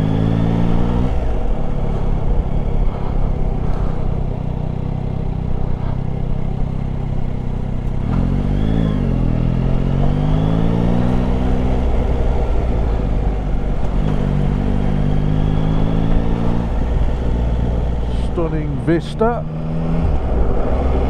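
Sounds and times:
motorcycle engine under way: 0.0 - 21.0
wind rush: 19.4 - 21.0.

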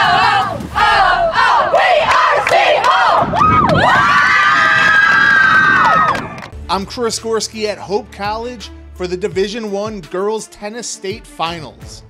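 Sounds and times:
girls screaming and cheering: 0.0 - 6.5.

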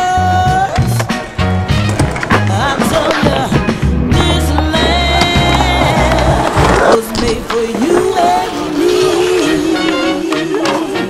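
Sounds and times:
skateboard wheels rolling on concrete: 0.0 - 11.0
skateboard clacks: 0.3 - 11.0.

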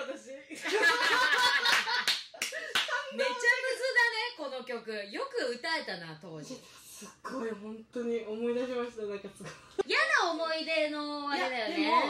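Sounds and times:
laughter: 0.5 - 3.1.

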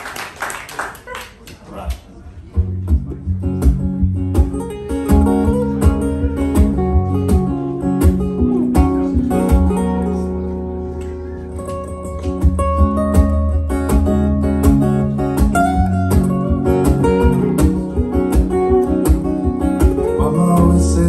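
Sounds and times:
soft guitar plucks: 2.5 - 21.0
acoustic guitars strumming: 2.6 - 21.0.

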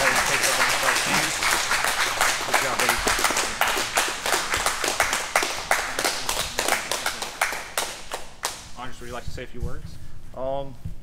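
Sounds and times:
roomful of people clapping: 0.0 - 9.1.

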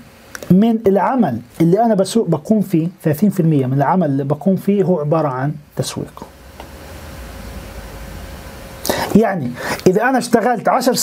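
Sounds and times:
faint steady hum: 0.0 - 11.0
man speaking: 0.5 - 6.4, 8.9 - 11.0.

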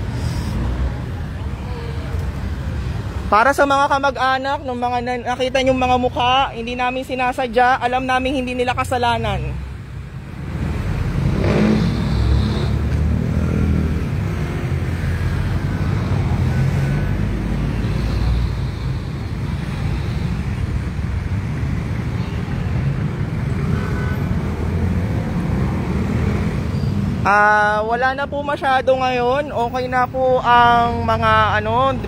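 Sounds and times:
low rumble of road traffic: 0.0 - 32.0.

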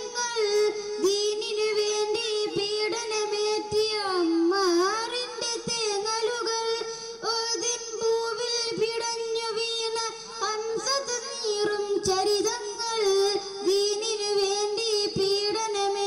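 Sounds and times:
boy singing into microphone: 0.0 - 16.0.

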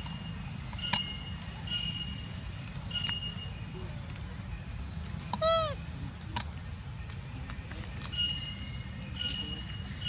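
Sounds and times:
baby monkey cooing: 5.4 - 5.8.

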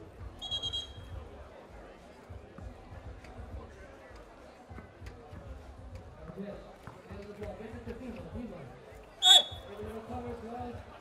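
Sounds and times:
referee whistle: 0.4 - 1.1, 9.2 - 9.7.

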